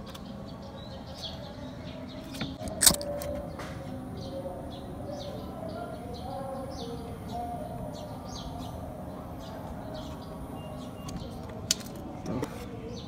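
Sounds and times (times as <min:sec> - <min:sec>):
small birds chirping: 0:00.0 - 0:13.0
sharp click: 0:02.3 - 0:03.4.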